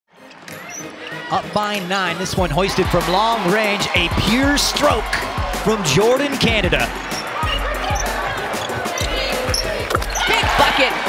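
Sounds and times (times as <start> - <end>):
background music: 0.1 - 11.0
sneakers squeaking: 0.2 - 2.2, 6.3 - 11.0.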